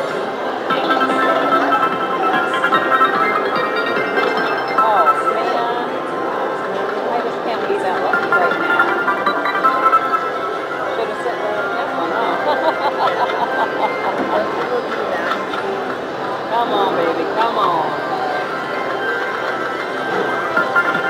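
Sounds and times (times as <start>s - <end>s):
voices chattering: 0.0s - 20.8s
electronic reel and win sounds: 0.7s - 6.6s, 7.4s - 15.1s, 18.3s - 21.0s
slot machine bonus music: 0.7s - 16.5s, 18.3s - 21.0s.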